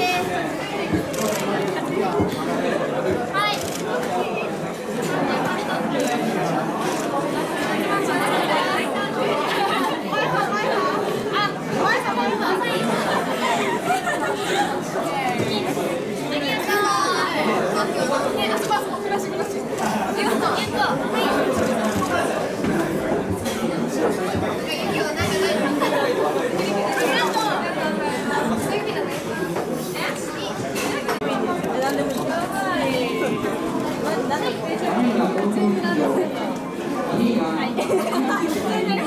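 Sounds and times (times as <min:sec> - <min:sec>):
girls chattering: 0:00.0 - 0:39.0.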